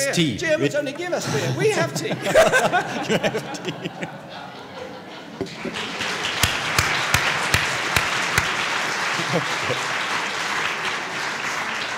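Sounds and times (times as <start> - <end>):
audience applauding: 5.4 - 11.9
close loud hand claps: 5.5 - 11.9.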